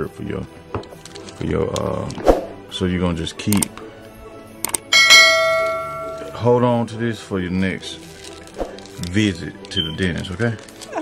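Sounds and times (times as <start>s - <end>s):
notification bell chime: 5.0s - 6.4s.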